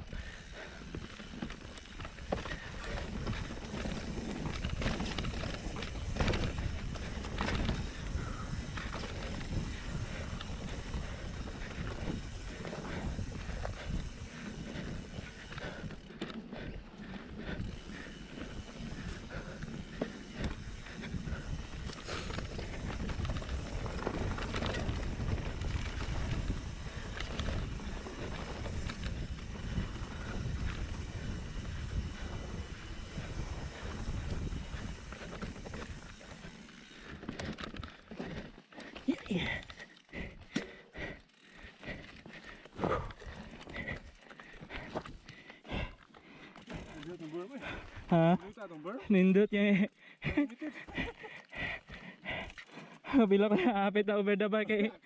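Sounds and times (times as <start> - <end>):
bike tyres rumbling on dirt: 0.1 - 48.4
wind on microphone: 18.5 - 36.2.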